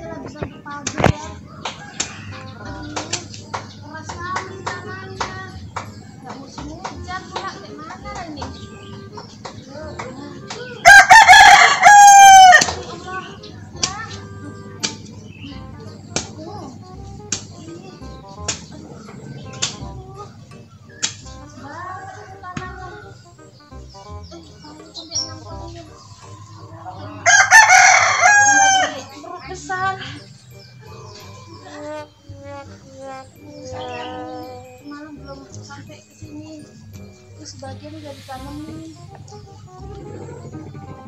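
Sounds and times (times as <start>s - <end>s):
rooster crowing: 1.5s - 2.8s, 10.8s - 12.7s, 21.7s - 23.1s, 26.7s - 29.2s.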